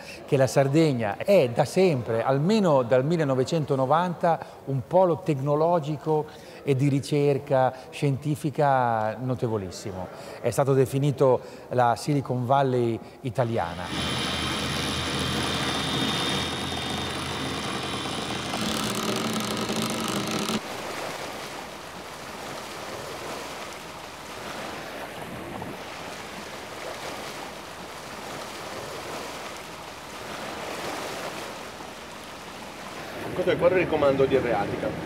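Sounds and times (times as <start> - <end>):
whirring hum with fixed tones: 13.6 - 20.6
wind and sea rushing: 20.6 - 35.0.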